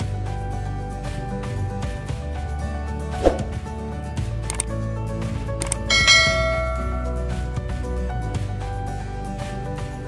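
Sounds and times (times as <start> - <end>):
background music: 0.0 - 10.0
sharp click: 4.4 - 4.7, 5.6 - 5.9
bell-like ding: 5.9 - 7.6.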